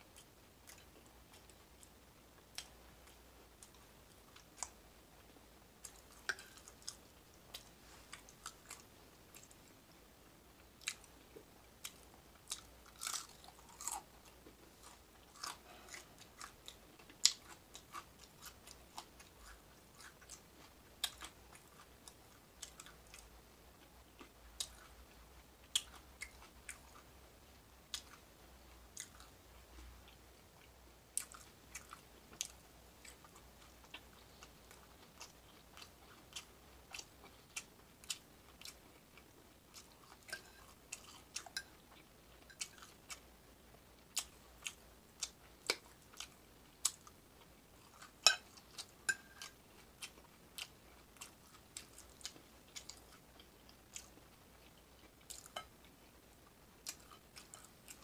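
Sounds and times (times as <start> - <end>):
person chewing food: 0.1 - 9.8, 10.6 - 27.1, 27.8 - 43.4, 44.0 - 58.0.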